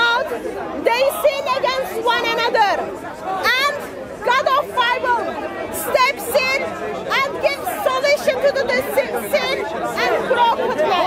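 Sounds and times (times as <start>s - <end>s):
woman talking: 0.0s - 2.8s, 5.8s - 11.0s.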